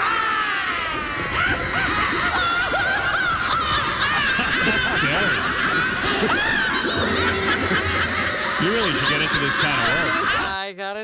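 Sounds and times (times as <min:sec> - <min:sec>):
witch cackling: 0:00.0 - 0:10.6
woman laughing: 0:01.0 - 0:10.7.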